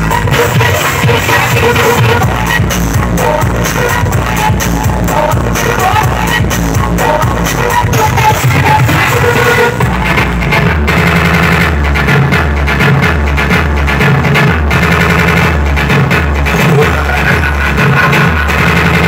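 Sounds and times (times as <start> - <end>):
loud music with heavy bass: 0.0 - 19.0.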